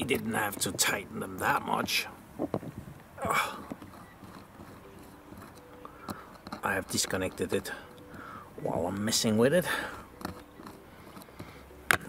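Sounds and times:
screwdriver ticks and scrapes: 0.0 - 1.0, 1.8 - 8.2, 8.9 - 12.0.

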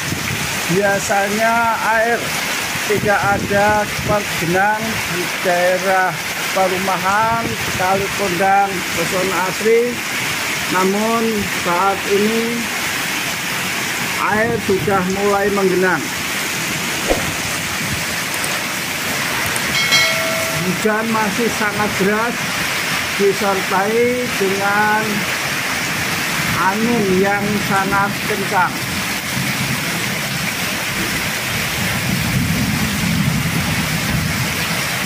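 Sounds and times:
heavy rain splashing on water: 0.0 - 35.0
brief thump: 17.0 - 17.5.

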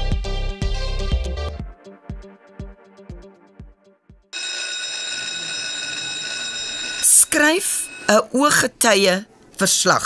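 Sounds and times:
electric bell ringing: 4.4 - 8.6.

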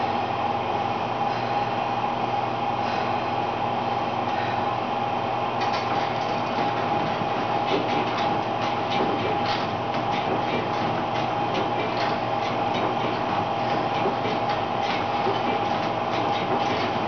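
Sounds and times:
elliptical trainer whirring: 0.0 - 17.0
pedal linkage clicks and knocks: 5.6 - 17.0.

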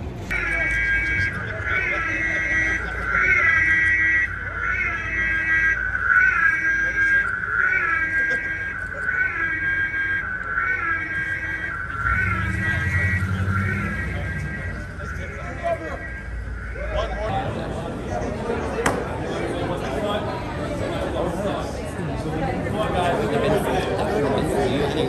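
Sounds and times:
siren wailing: 0.3 - 18.8.

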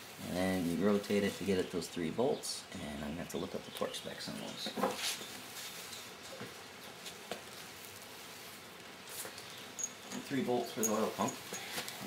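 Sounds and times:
steady hiss: 0.0 - 12.0.

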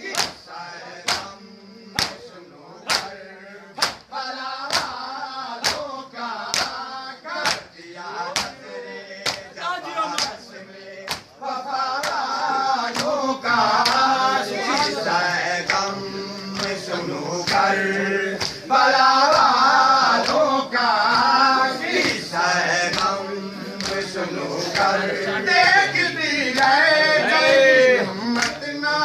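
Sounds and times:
hands slapping chests in unison: 0.0 - 28.8
men chanting a lament: 0.0 - 29.0.

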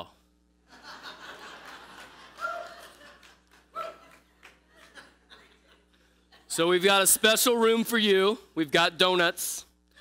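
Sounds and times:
congregation laughing: 0.7 - 7.8.

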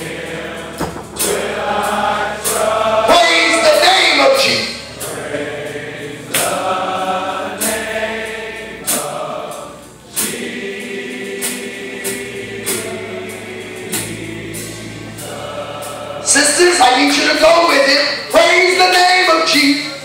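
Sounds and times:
congregation singing gospel: 0.0 - 20.0
strong beat: 0.0 - 20.0.

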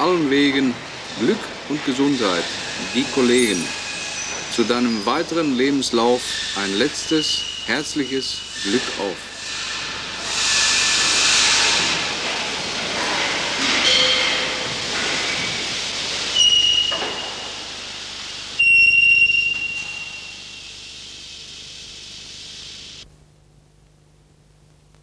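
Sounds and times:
steam engine hissing: 0.0 - 23.0
high whistling tone: 16.4 - 17.4, 18.6 - 20.8.

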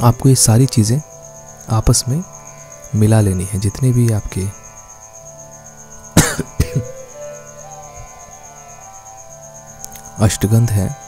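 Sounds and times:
quiet instrumental music: 0.0 - 11.0
loud cough: 6.2 - 6.9.

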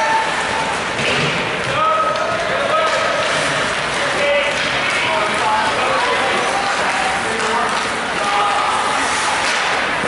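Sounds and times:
skates on ice: 2.7 - 10.0.

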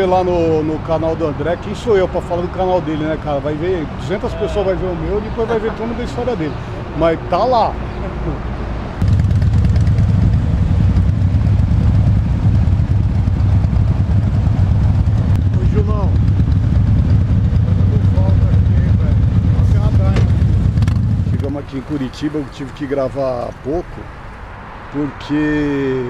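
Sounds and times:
wind rumble on microphone: 9.0 - 21.5
motorcycle engine: 9.0 - 23.0.

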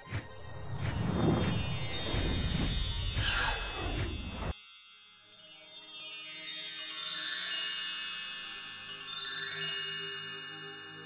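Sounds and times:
shimmering bell-like chimes: 0.0 - 11.0.

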